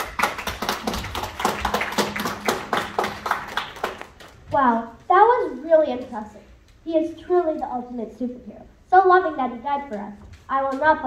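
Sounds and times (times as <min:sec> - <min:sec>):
people applauding: 0:00.0 - 0:04.4.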